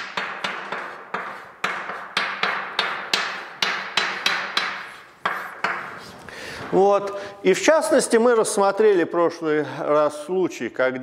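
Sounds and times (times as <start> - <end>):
chalk tapping on blackboard: 0.0 - 6.2.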